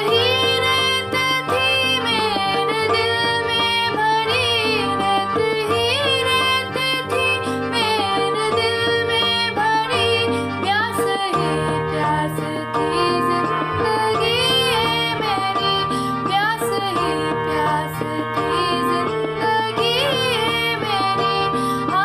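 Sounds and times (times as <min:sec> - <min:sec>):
keyboard chords and bass line: 0:00.0 - 0:22.0
woman singing slow melody: 0:00.0 - 0:22.0.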